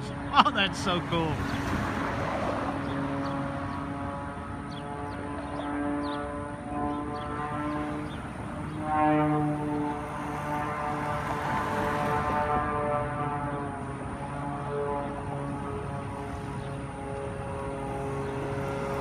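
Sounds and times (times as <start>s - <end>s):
distant propeller plane droning: 0.0s - 19.0s.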